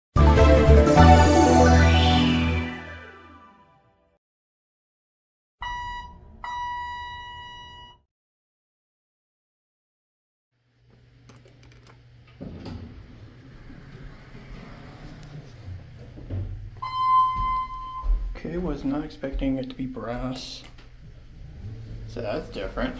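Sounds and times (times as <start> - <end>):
electronic chime: 5.6 - 8.0, 16.8 - 18.2.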